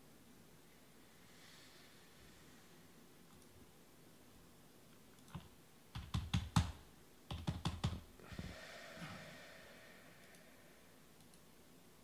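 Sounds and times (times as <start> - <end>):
soft hiss: 0.0 - 5.9, 8.1 - 12.0.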